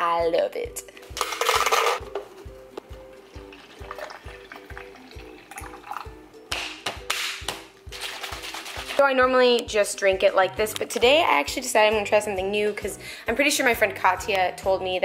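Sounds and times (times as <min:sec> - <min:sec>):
background music with steady beat: 0:00.0 - 0:15.0
coffee pouring into plastic bottle: 0:03.4 - 0:06.1.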